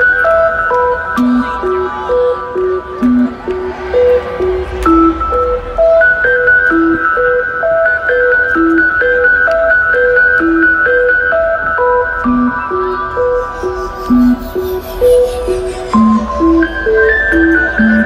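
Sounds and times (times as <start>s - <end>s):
electronic dance music synths: 12.5s - 18.0s.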